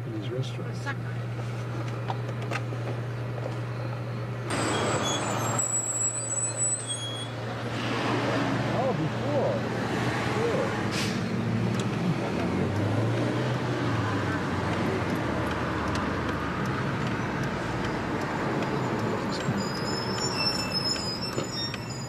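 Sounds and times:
road and traffic noise: 0.0 - 22.0.

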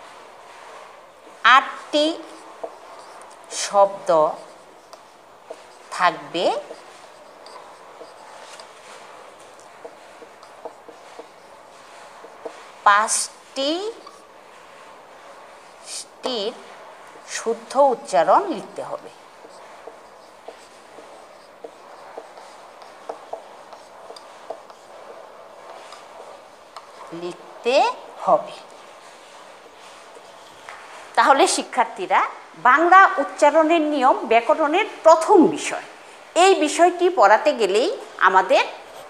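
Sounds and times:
marker scratching on whiteboard: 0.6 - 32.0, 37.6 - 39.0
person speaking: 1.4 - 14.3, 15.6 - 39.0.

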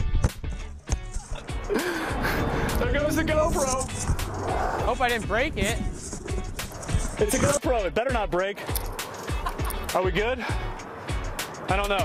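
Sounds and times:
background music: 0.0 - 12.0
camera knocking and rustling on grass: 3.4 - 4.4, 5.6 - 7.6.

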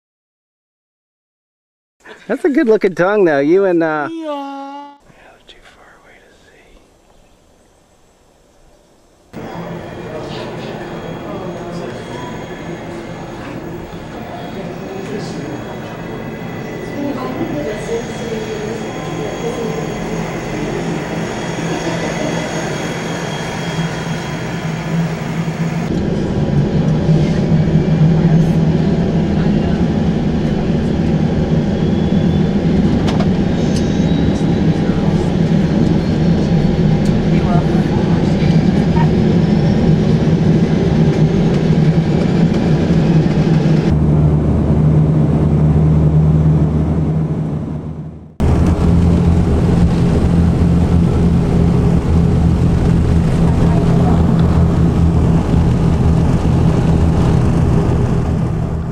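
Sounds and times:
high turbine whine: 9.1 - 58.9
propeller drone: 9.4 - 58.9.

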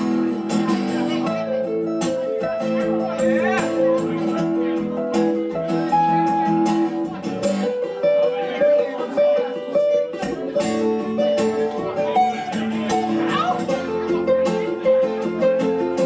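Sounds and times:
acoustic guitar playing: 0.0 - 16.0.

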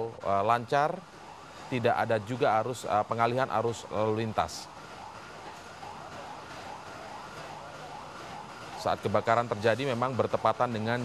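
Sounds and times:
faint emergency vehicle siren wailing: 0.0 - 11.0
steady outdoor background hiss: 0.0 - 11.0.

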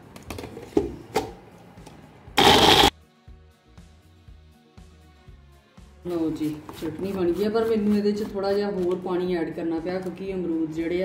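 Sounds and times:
blender motor burst: 2.4 - 2.9.

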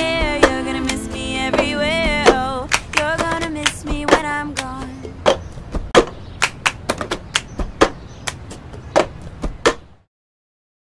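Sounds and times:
hand claps: 2.7 - 4.9, 6.4 - 7.6, 8.2 - 8.5.

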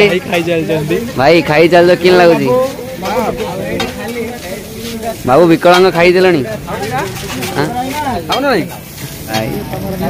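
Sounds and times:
food sizzling in a pan: 0.0 - 10.0.

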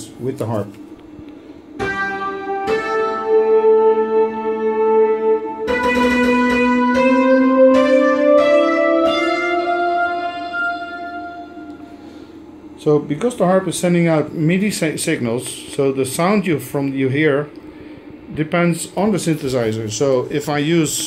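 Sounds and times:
sustained synthesizer notes: 1.2 - 12.8.

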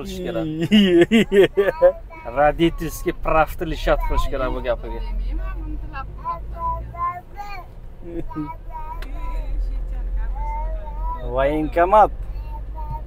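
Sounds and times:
car driving rumble from inside: 0.0 - 13.0
quiet voices: 0.0 - 13.0.

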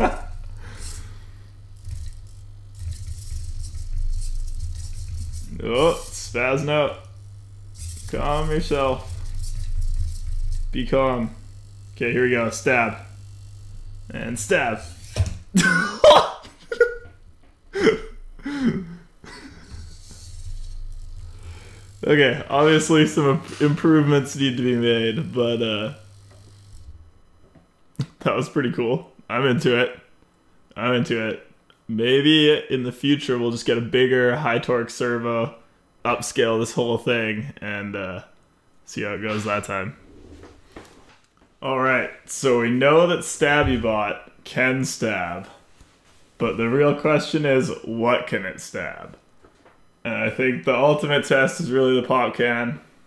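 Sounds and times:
small servos moving: 0.0 - 15.5, 19.3 - 27.3
low hum: 0.0 - 35.2.

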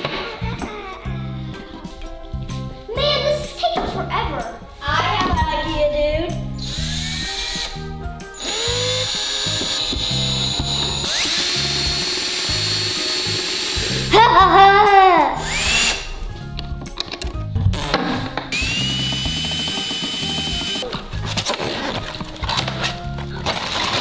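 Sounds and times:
bouncy background music: 0.0 - 24.0
cordless drill driving screws: 6.6 - 7.8, 8.4 - 14.1, 15.4 - 16.1, 18.5 - 20.8.

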